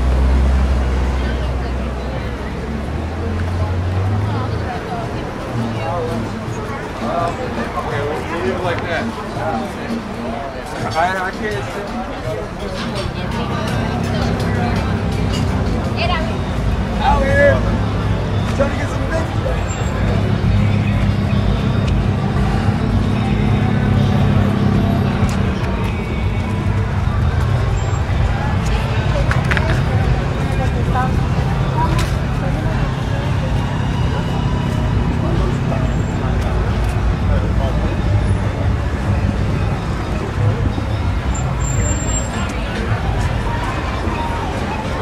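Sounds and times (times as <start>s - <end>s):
background music: 0.0s - 45.0s
people chattering: 0.0s - 45.0s
traffic rumble: 0.0s - 45.0s
voices of passers-by: 0.0s - 45.0s.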